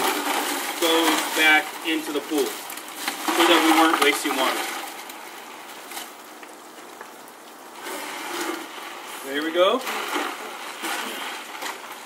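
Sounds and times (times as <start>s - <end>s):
ice pattering into water: 0.0s - 12.0s.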